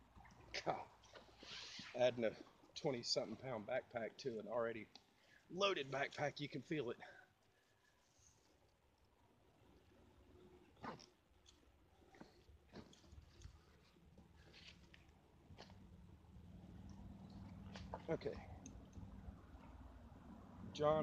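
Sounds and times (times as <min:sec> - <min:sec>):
low steady hum: 0:01.9 - 0:21.0.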